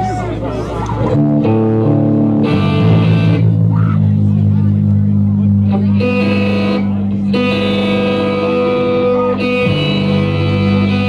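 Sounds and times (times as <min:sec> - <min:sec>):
crowd chatter: 0:00.0 - 0:11.0
droning electric guitar and bass: 0:00.0 - 0:11.0.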